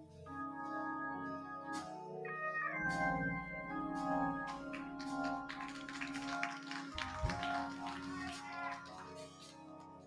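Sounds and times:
organ holding sustained chords: 0.0 - 10.0.

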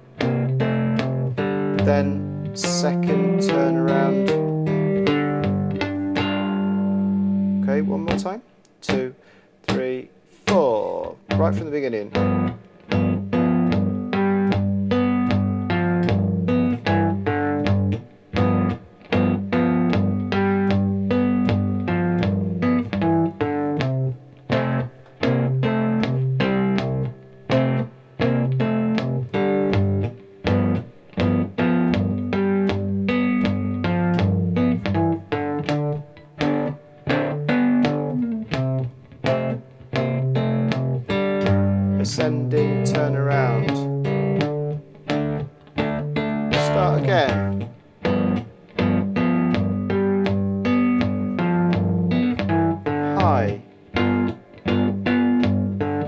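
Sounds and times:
fingerstyle blues guitar: 0.0 - 56.0.

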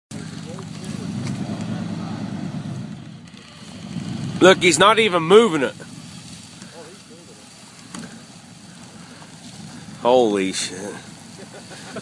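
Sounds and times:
truck engine straining under load: 0.1 - 12.0.

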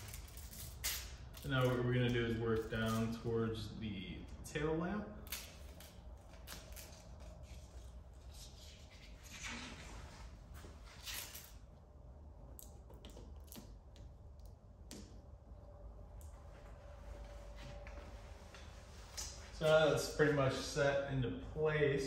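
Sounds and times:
adhesive film rustling and scraping: 0.0 - 1.8, 5.2 - 9.8
low steady hum: 0.0 - 22.0.

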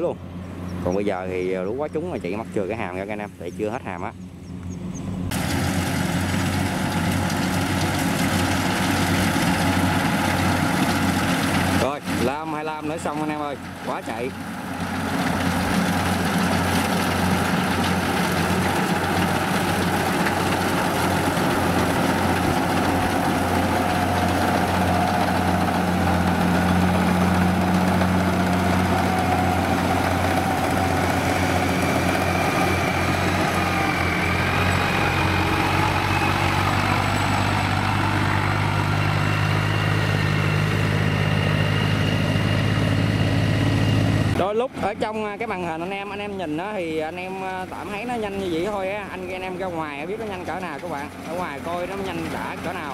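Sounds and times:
combine harvester engine drone: 0.0 - 52.9.

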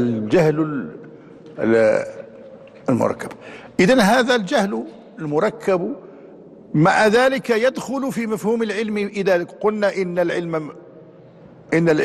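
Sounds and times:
man speaking: 0.0 - 10.8, 11.6 - 12.0.

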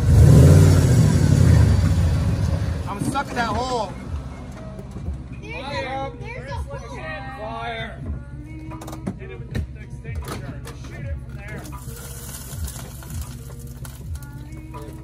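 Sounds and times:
background music with steady beat: 0.0 - 15.0.

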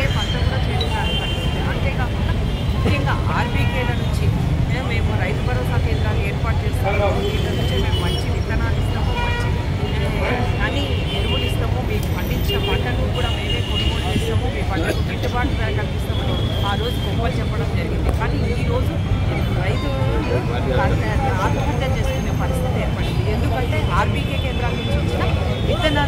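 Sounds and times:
woman speaking: 0.0 - 26.0.

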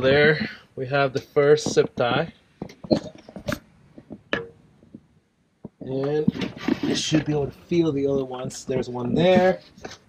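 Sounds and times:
light clicks and knocks: 1.1 - 6.8.

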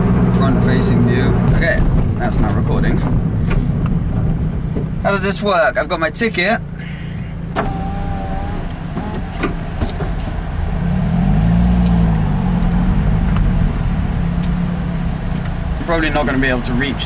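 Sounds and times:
car engine idling and revving: 0.0 - 17.0.

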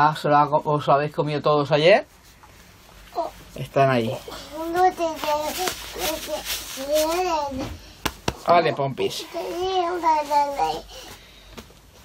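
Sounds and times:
young child's voice: 4.3 - 7.8, 8.6 - 11.0.

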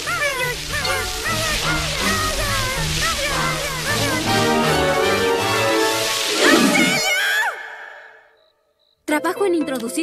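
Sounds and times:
film score music: 0.0 - 8.5.

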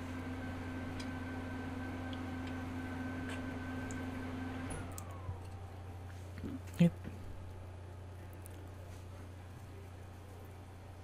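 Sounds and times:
electrical hum with high whine: 0.0 - 11.0.

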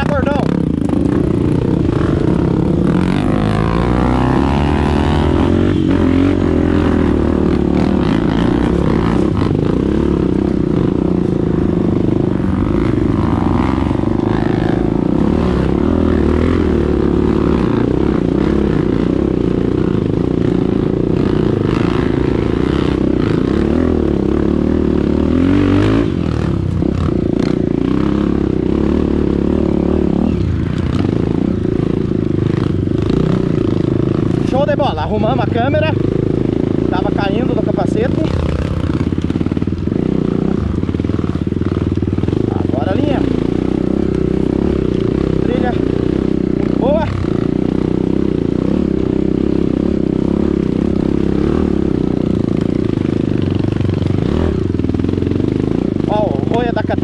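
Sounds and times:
dirt bike engines running: 0.0 - 57.0.

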